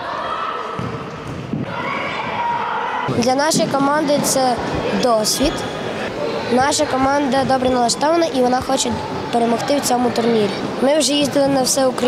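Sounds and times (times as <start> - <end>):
shouting and cheering: 0.0 - 4.5
young players' voices echoing: 0.0 - 12.0.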